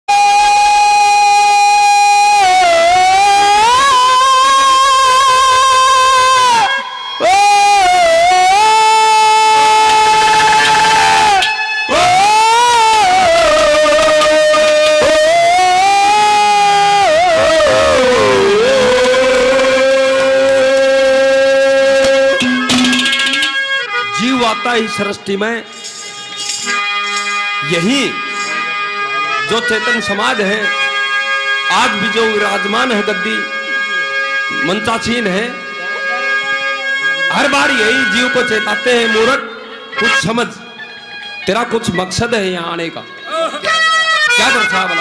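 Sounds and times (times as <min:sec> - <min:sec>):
harmonium drone: 0:00.1 - 0:45.0
man singing long high note: 0:00.2 - 0:22.7.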